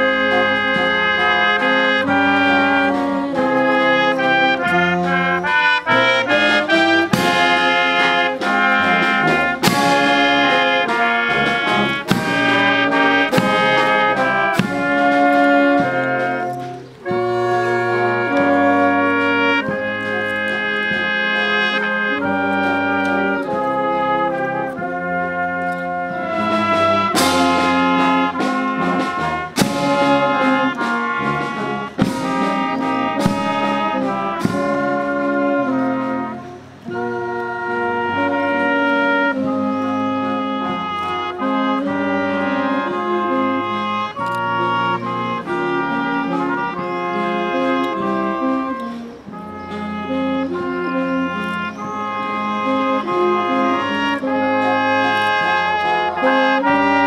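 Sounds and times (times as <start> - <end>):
brass band playing slow music: 0.0 - 57.0.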